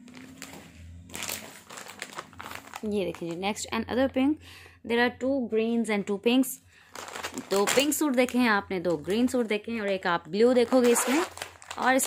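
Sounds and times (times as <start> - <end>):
plastic packaging crinkling: 0.0 - 3.6, 6.8 - 12.0.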